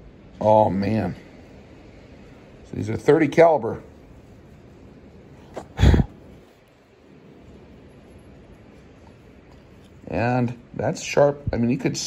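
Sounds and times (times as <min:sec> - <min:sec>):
snort-like burst of breath: 0:05.5 - 0:06.2.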